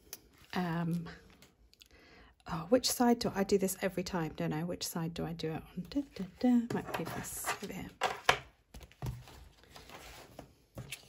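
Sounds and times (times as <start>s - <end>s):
paper handling noise: 8.7s - 11.0s.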